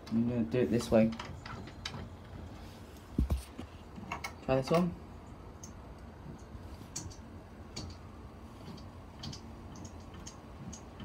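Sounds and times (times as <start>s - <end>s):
low steady hum: 0.0s - 11.0s
light clicks and ticks: 5.6s - 11.0s.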